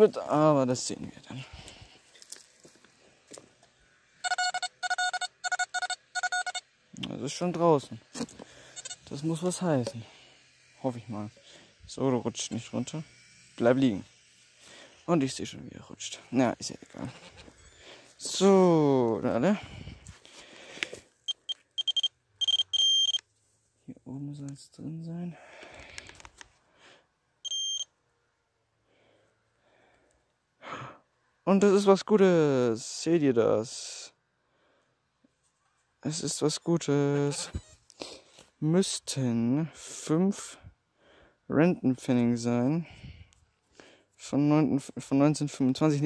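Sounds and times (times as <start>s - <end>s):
metal detector beeps: 4.2s - 6.7s, 8.8s - 9.3s, 21.3s - 23.2s, 27.4s - 27.9s.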